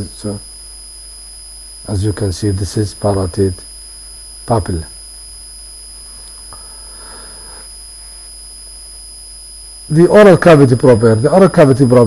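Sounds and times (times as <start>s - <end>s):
electrical hum and hiss: 0.0s - 12.0s
high-pitched whine: 0.0s - 12.0s.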